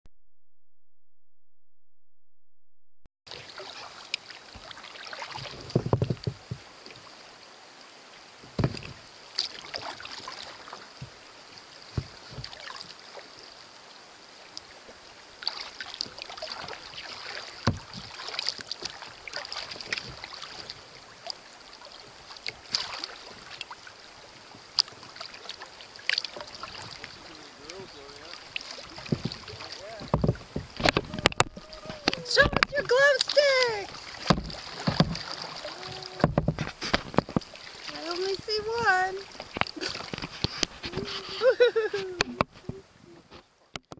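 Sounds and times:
paddle strokes splashing in water: 3.3s - 7.5s, 8.2s - 43.8s
knocks and thumps: 5.7s - 6.6s, 8.6s - 9.0s, 29.0s - 33.0s, 34.2s - 35.4s, 36.2s - 37.5s
steady high-pitched hiss: 19.0s - 30.9s.

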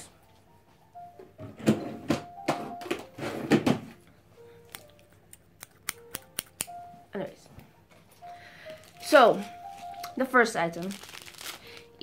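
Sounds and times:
scissors clicking open and shut: 4.7s - 6.8s.

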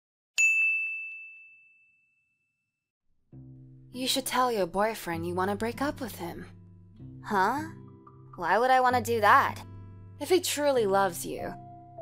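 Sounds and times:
bright bell ding: 0.4s - 2.4s.

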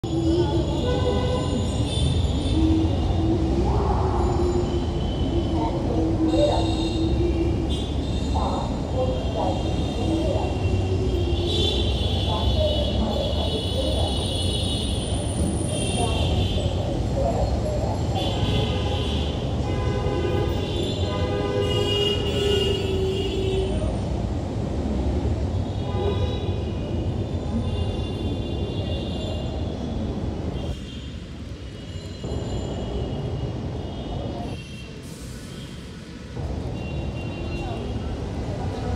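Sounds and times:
road traffic rumble: 0.0s - 38.9s.

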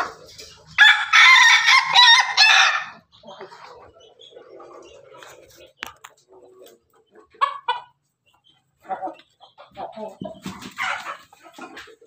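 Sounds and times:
loud chicken calls: 0.0s - 3.2s, 8.8s - 12.0s
chickens clucking: 0.0s - 12.0s.

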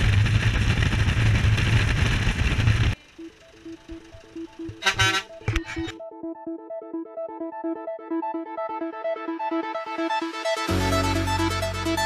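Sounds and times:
truck engine and road rumble: 0.0s - 6.0s
electronic background music: 3.0s - 12.0s
short honk-like blast: 4.8s - 5.9s.

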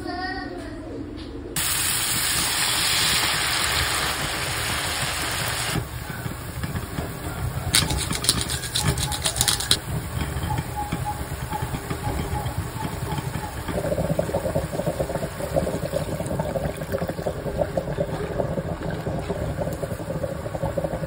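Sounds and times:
stew boiling and bubbling: 1.6s - 21.0s.

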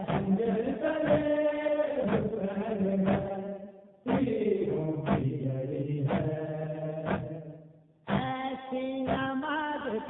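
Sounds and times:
struck beat: 0.0s - 1.4s, 2.0s - 3.4s, 4.0s - 5.4s, 6.0s - 9.4s
man chanting lament: 0.0s - 7.5s.

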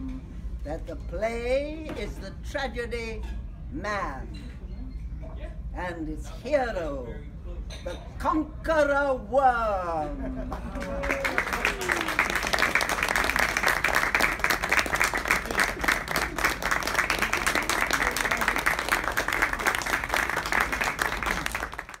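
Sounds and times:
audience applauding: 10.8s - 22.0s.

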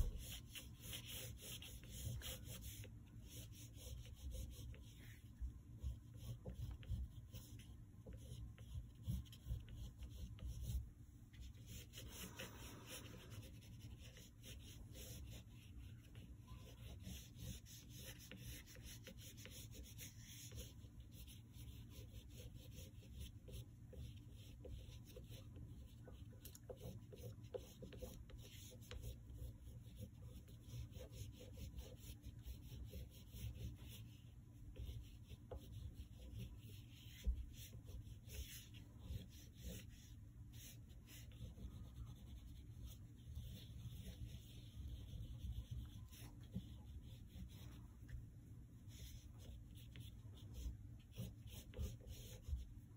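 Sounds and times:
oil pastel scratching on paper: 0.0s - 52.9s.

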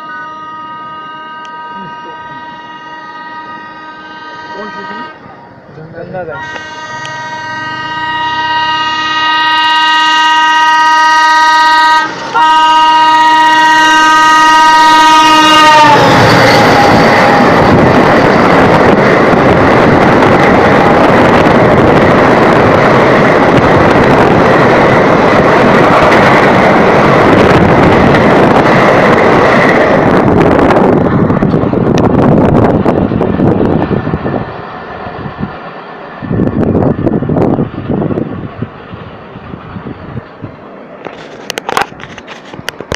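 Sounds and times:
train horn blast: 0.0s - 5.2s, 6.3s - 17.6s
train coaches rumbling past: 0.0s - 42.9s.

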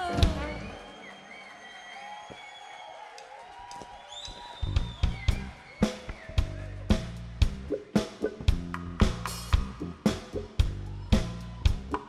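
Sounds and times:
live funk band: 4.8s - 12.0s.

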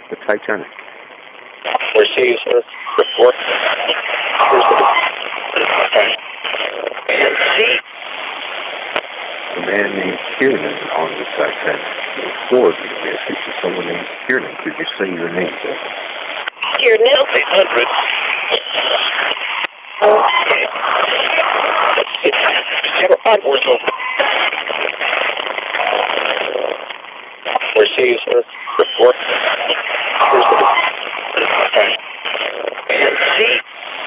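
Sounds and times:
broadcast voice fragments: 0.0s - 0.8s, 1.7s - 7.8s, 9.5s - 15.9s, 16.5s - 26.8s, 27.5s - 33.6s
radio static hiss: 0.0s - 34.0s.

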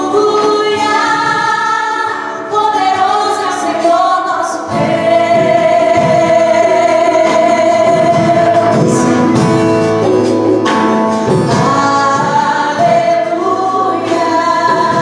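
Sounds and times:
women singing gospel song: 0.0s - 9.5s, 11.3s - 15.0s
musical accompaniment: 0.0s - 15.0s.

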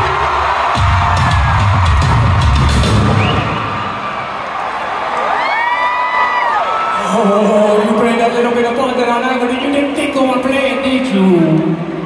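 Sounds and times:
fans cheering and shouting: 0.0s - 7.8s.

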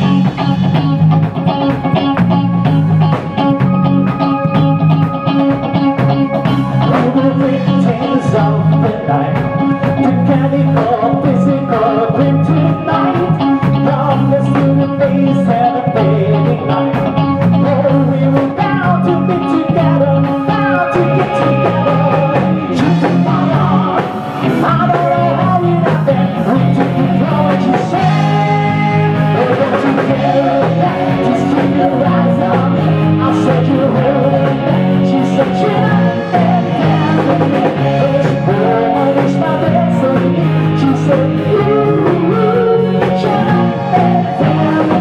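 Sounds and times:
bass guitar: 0.0s - 45.0s
drums: 0.0s - 45.0s
electric guitar: 0.0s - 45.0s
keyboards: 0.0s - 45.0s
live pop-rock band: 0.0s - 45.0s
man and woman singing: 6.8s - 45.0s.

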